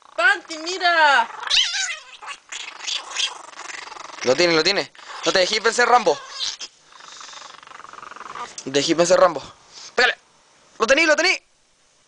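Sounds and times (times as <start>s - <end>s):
small dogs growling: 0.0s - 8.7s.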